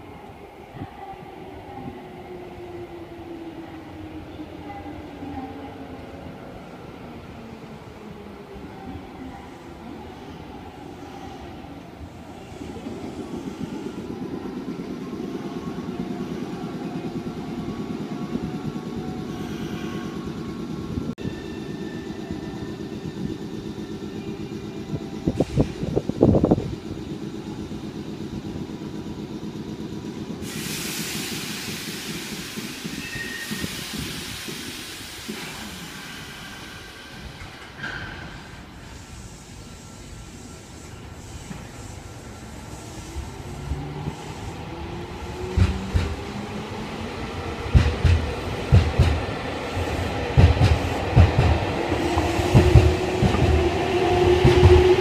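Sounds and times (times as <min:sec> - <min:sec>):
air hiss: 0:30.4 - 0:37.4, 0:38.1 - 0:44.8
train wheel clatter: 0:45.4 - 0:46.3, 0:47.7 - 0:55.0.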